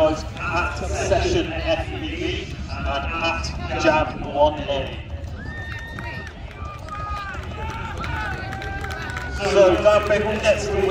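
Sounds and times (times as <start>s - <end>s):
crowd rumble: 0.0s - 10.9s.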